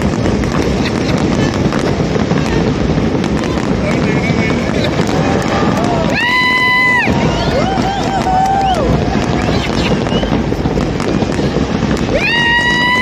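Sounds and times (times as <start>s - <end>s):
crowd cheering: 0.0s - 13.0s
fireworks bangs and crackles: 0.0s - 13.0s
high whoop: 4.8s - 10.5s, 12.0s - 13.0s.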